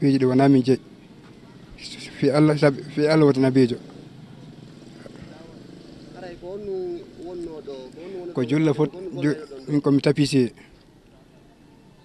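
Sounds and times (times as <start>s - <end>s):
faint distant voices: 0.0s - 12.0s
outdoor background noise: 0.0s - 12.0s.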